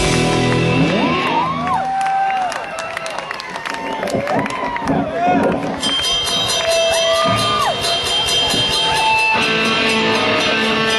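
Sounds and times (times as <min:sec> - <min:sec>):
punk rock band playing: 0:00.0 - 0:01.7, 0:06.1 - 0:10.9.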